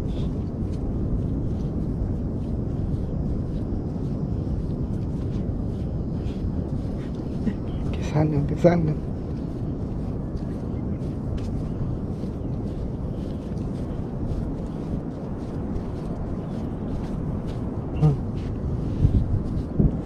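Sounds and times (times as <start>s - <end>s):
low outdoor rumble: 0.0s - 20.0s.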